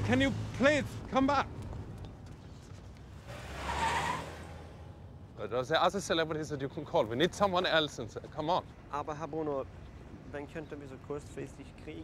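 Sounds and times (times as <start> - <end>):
tyre squeal: 3.3 - 4.7.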